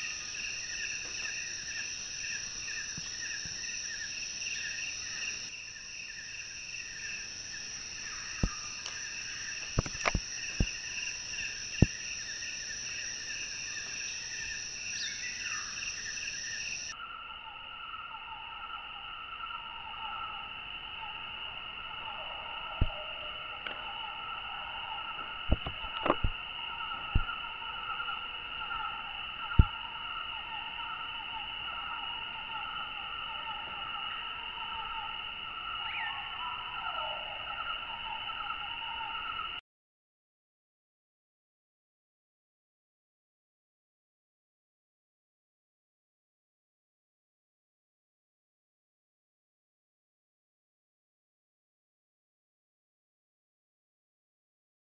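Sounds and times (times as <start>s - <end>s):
pulsing insect chorus: 0.0s - 39.6s.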